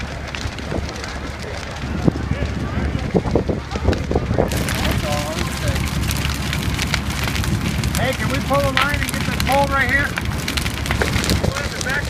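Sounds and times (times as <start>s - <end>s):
burning wood crackling and popping: 0.0s - 12.0s
low rumble of flames: 0.0s - 12.0s.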